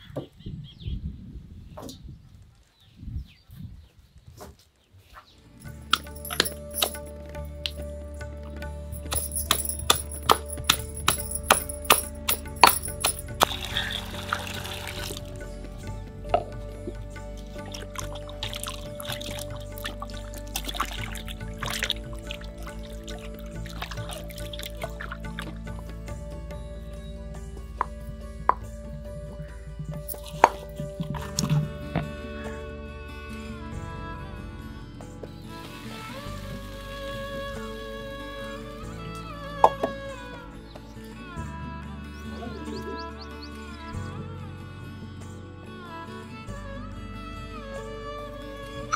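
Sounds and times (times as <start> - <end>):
soft background music: 5.3 - 48.9
water pouring into bowl: 12.6 - 15.4, 17.5 - 25.5.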